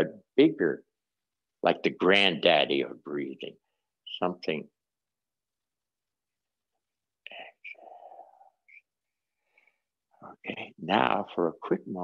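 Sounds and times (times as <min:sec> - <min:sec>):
man whispering: 0:07.2 - 0:08.9, 0:10.2 - 0:10.8.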